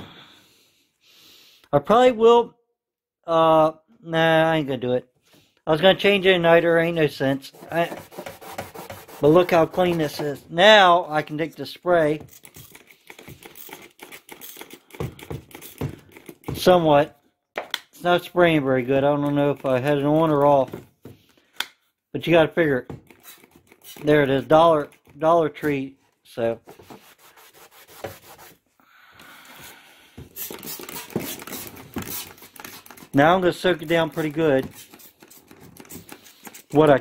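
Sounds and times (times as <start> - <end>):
rag rubbing on metal: 7.3 - 10.4
spray bottle spritzing: 30.3 - 33.0, 34.1 - 36.8.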